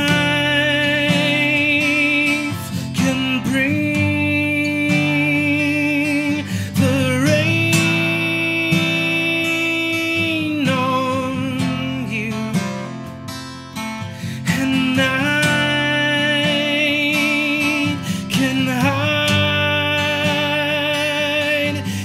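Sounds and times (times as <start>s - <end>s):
man singing with vibrato: 0.0s - 13.1s, 14.1s - 22.0s
strummed acoustic guitar: 0.0s - 22.0s.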